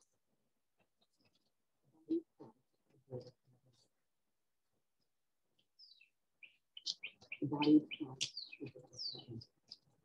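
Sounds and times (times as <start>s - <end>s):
songbird chirping: 4.9s - 10.0s.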